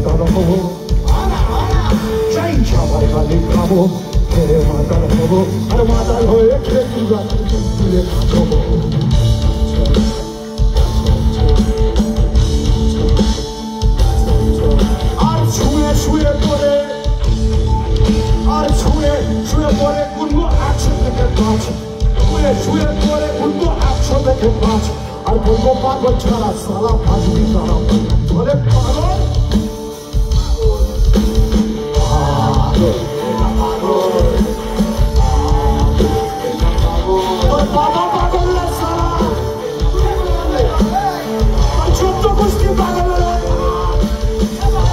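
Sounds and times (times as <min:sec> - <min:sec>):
live rock band: 0:00.0 - 0:44.9
male lead vocal: 0:00.0 - 0:44.9.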